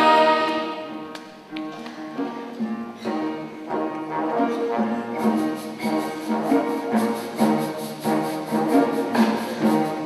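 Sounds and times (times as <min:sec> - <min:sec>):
orchestral chord: 0:00.0 - 0:01.0.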